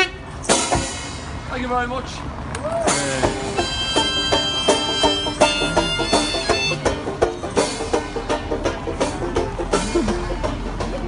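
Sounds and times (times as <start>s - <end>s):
bass drum and cymbal beat: 0.0s - 1.5s, 2.9s - 11.0s
plucked strings: 2.9s - 11.0s.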